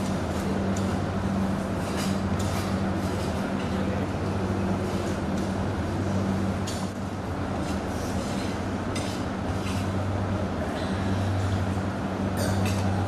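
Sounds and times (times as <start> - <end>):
crowded hall rumble: 0.0 - 13.0
steady low hum: 0.0 - 13.0.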